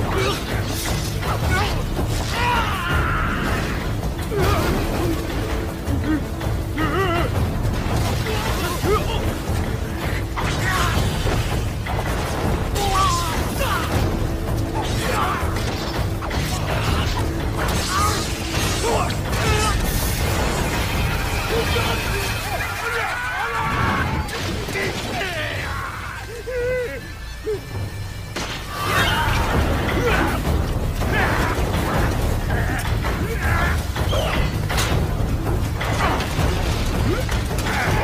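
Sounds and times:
soundtrack music: 0.0 - 38.0.

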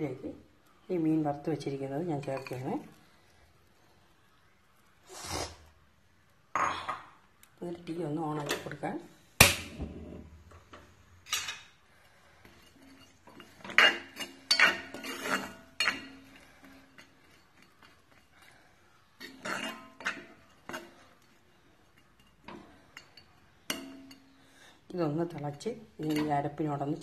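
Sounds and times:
metal spoon scraping iron pot: 12.4 - 18.6, 19.2 - 24.4, 25.9 - 27.0.

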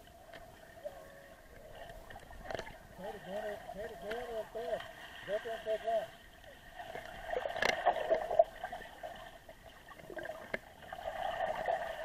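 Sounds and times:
muffled underwater gurgling: 0.0 - 9.1.

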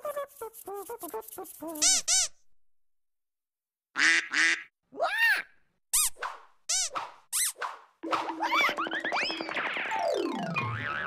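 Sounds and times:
duck quacking: 4.0 - 4.7.

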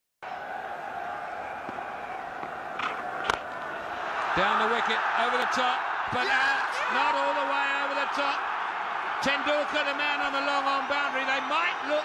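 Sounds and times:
stadium crowd hum: 0.2 - 12.0
cricket bat striking ball: 2.4 - 3.6.

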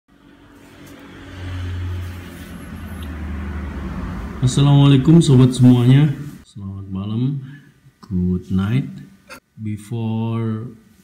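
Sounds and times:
road vehicle engine hum: 0.1 - 6.4.

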